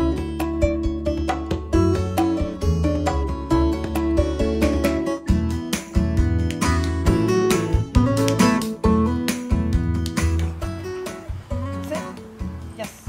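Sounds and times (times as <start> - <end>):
strummed acoustic guitar music: 0.0 - 13.0.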